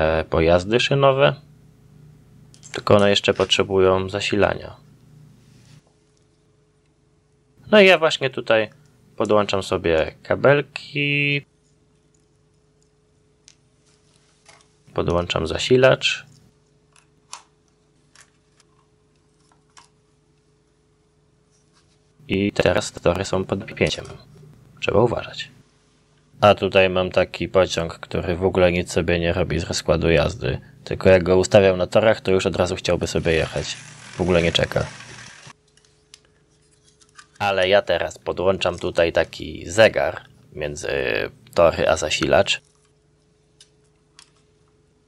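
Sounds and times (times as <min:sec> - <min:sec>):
faint steady hum: 0:00.0 - 0:45.0
model train motor whirring: 0:33.2 - 0:35.6.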